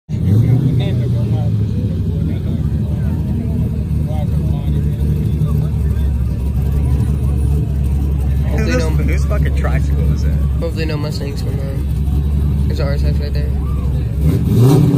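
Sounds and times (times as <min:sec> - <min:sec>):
car engine rumbling: 0:00.1 - 0:14.9
crowd voices: 0:00.1 - 0:14.9.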